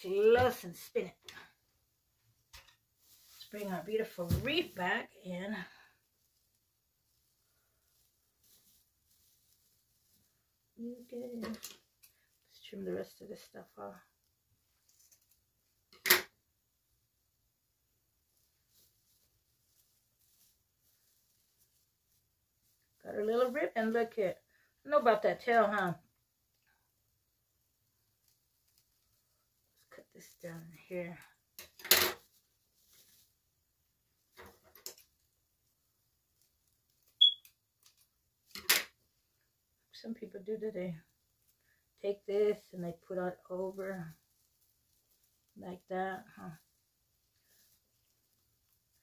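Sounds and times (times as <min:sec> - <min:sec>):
ribbon rustling: 0:02.3 - 0:13.3, 0:14.0 - 0:16.0, 0:18.0 - 0:24.5, 0:25.6 - 0:39.8, 0:41.1 - 0:49.0.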